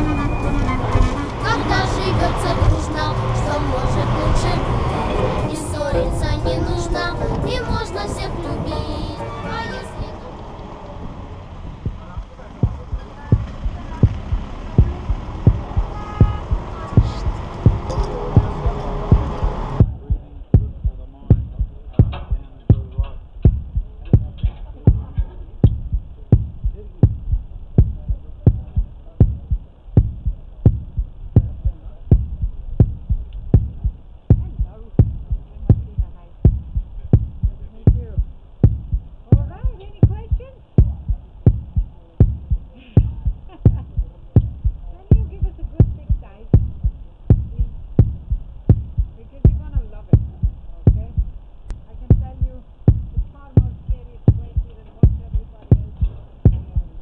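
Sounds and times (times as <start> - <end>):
faint voices: 0.0 - 57.0
low thudding heartbeat beat: 11.6 - 57.0.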